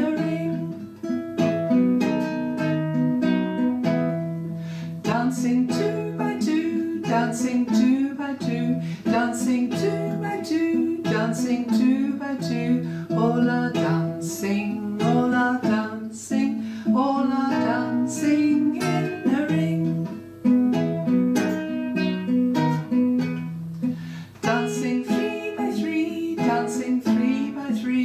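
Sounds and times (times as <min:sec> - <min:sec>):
woman singing: 0:00.0 - 0:00.9, 0:05.0 - 0:20.2, 0:24.4 - 0:28.0
acoustic guitar: 0:00.0 - 0:28.0.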